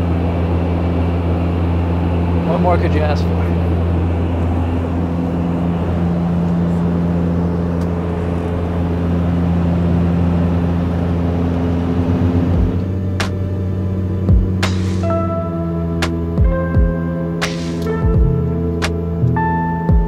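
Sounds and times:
aircraft cabin drone: 0.0 - 20.0
music: 12.6 - 20.0.

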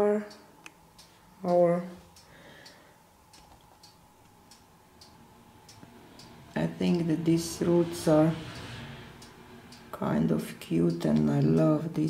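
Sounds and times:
faint regular ticking: 0.0 - 12.0.

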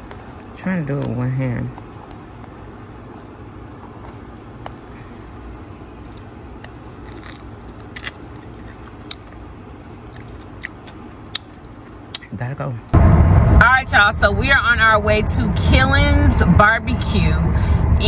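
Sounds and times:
low background rumble: 0.0 - 18.0
person chewing with wet clicks: 6.0 - 12.4.

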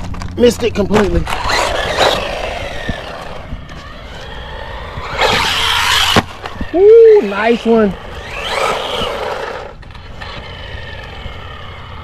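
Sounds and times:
rc car motor and tyre noise: 0.0 - 12.0
man saying ooh: 6.8 - 7.4.

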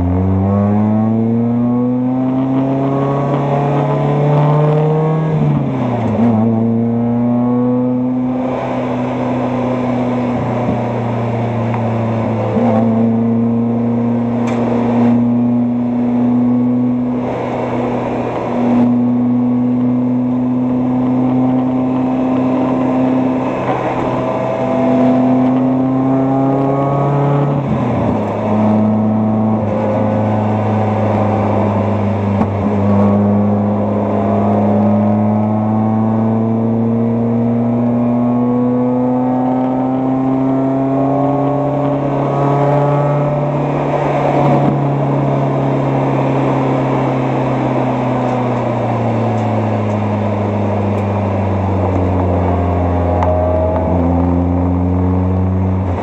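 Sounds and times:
car engine accelerating hard: 0.0 - 56.0.

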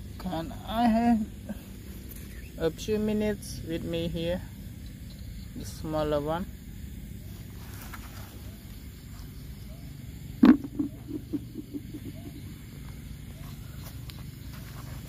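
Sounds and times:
steady low hum: 0.0 - 15.0
shell knocking in plastic bucket: 10.4 - 12.4.

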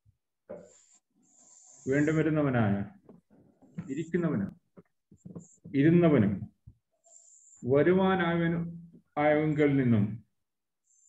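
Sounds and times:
person speaking over video call: 1.8 - 6.7, 7.6 - 10.4.

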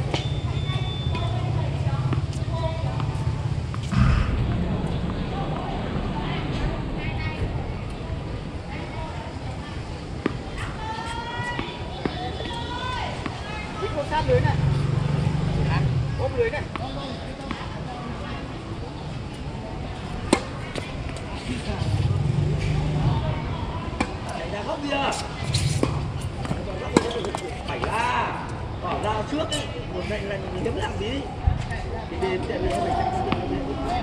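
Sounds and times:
players talking: 0.0 - 34.0
low hum: 3.1 - 8.8
tennis ball struck by racquet: 25.7 - 27.8.

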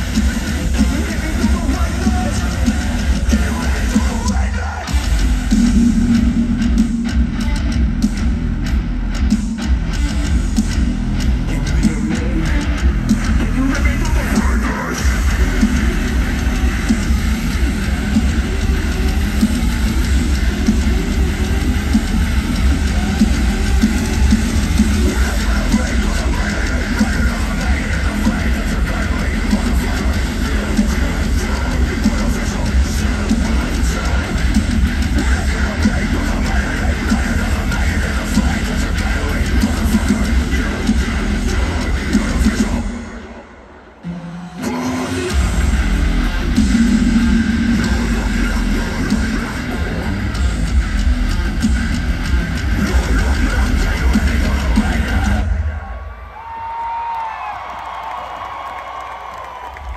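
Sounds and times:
live heavy metal band: 0.0 - 59.9.

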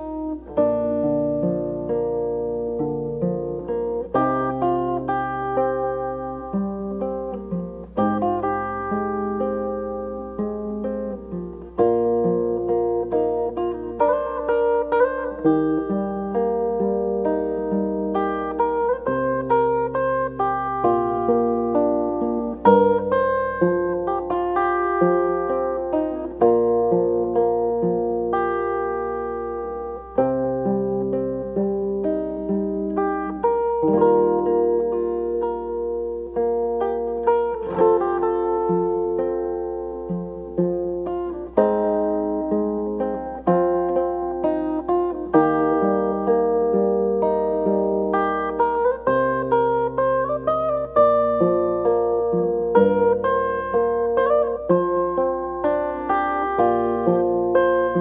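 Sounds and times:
fingerstyle acoustic guitar: 0.0 - 58.0.

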